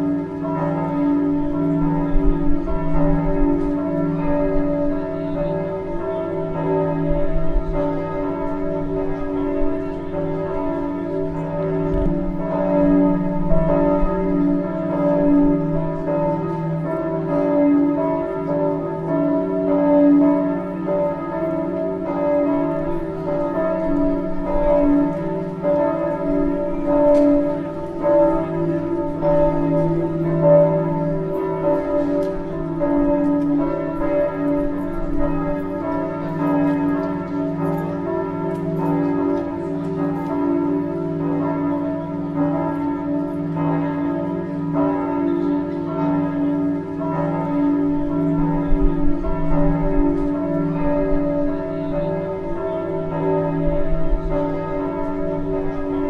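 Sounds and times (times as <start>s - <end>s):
church bells pealing: 0.0s - 56.0s.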